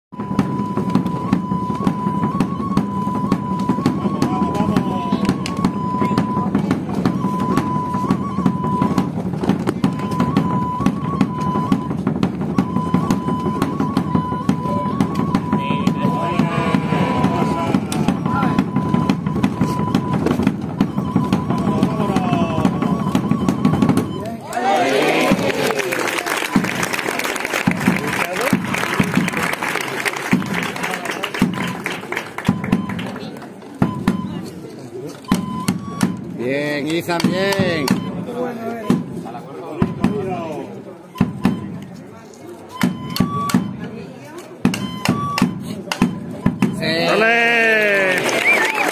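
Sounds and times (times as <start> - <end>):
rapid drum roll: 0.2 - 24.2
shrill pipe tone: 12.6 - 20.2
crowd applause: 16.0 - 18.9, 24.5 - 33.6, 47.1 - 48.9.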